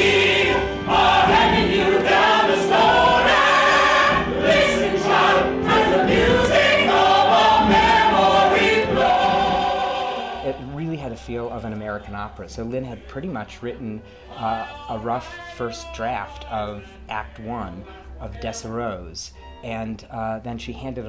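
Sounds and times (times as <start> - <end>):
ensemble singing in chorus: 0.0 - 10.7.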